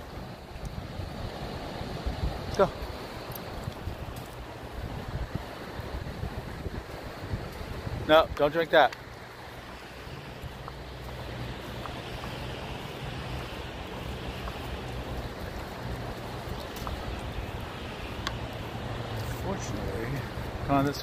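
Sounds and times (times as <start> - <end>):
wind: 0.0 - 21.0
faint clicks: 18.2 - 18.5.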